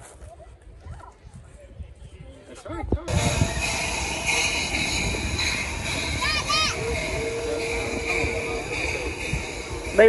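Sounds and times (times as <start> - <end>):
miniature train rumbling on track: 3.1 - 10.0.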